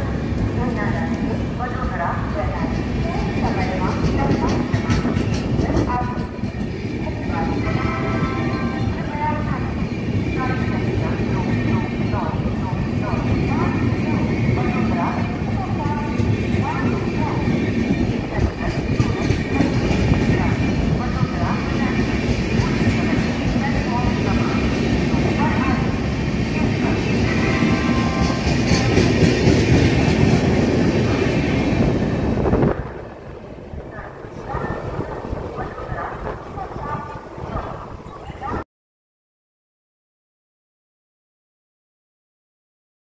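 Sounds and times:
train coaches rumbling past: 0.0s - 38.6s
train wheels clickety-clack: 2.5s - 7.8s, 13.0s - 32.1s.

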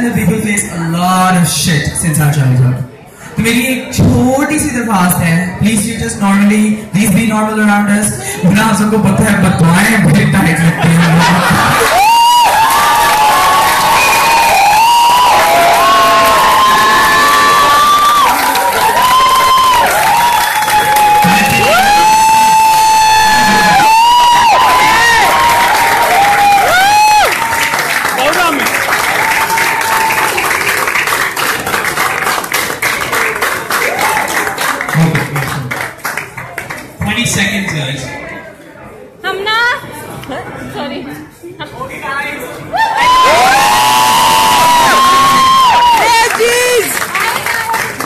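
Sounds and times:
audience clapping and cheering: 11.0s - 37.8s, 42.8s - 48.0s.

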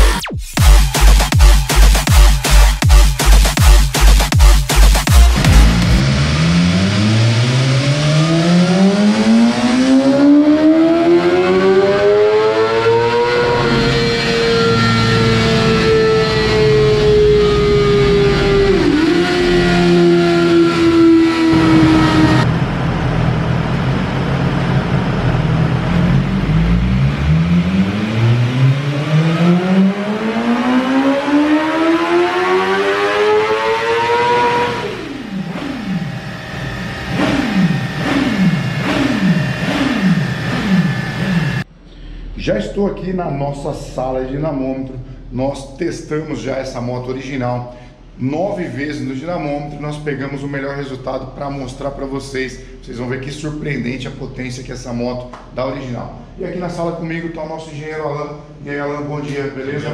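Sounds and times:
motorcycle engine revving on dyno: 0.0s - 41.7s.

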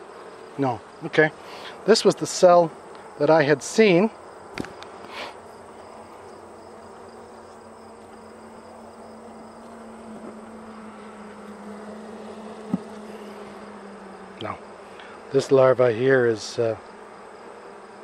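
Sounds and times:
bees buzzing: 0.0s - 18.0s.

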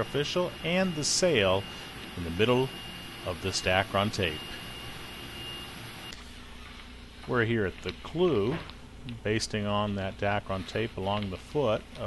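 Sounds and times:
faint high whine: 0.0s - 12.0s
room tone hiss: 0.0s - 12.0s.

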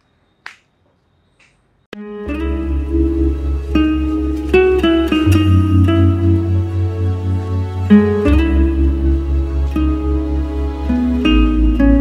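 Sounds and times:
guitar music: 2.0s - 12.0s.

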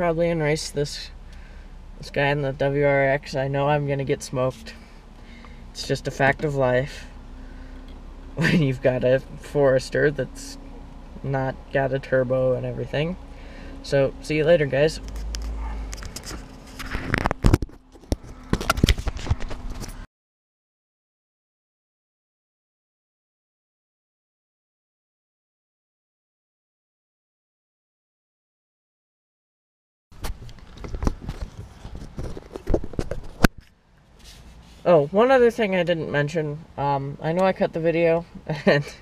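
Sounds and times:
camera knocking and clattering: 16.0s - 19.9s, 30.2s - 33.7s.

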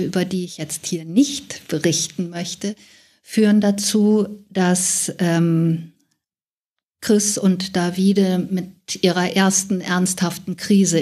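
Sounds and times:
woman speaking: 0.0s - 6.0s, 7.0s - 11.0s.

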